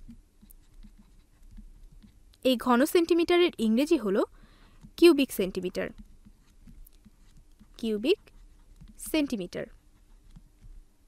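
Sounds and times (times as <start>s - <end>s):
low steady hum: 0.0s - 11.0s
stylus writing on tablet: 0.0s - 11.0s.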